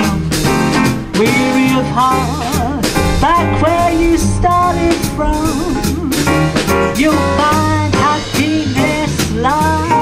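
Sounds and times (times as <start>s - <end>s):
double bass: 0.0s - 10.0s
drum kit: 0.0s - 10.0s.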